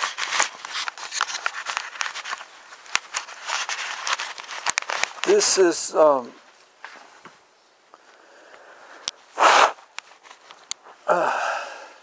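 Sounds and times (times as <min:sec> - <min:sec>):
camera handling rustle: 0:00.0 - 0:05.5, 0:09.1 - 0:11.0.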